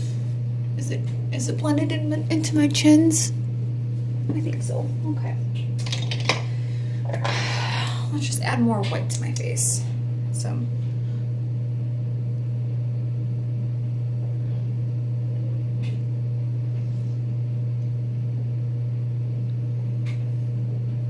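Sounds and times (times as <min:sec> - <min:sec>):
loud low hum: 0:00.0 - 0:21.0.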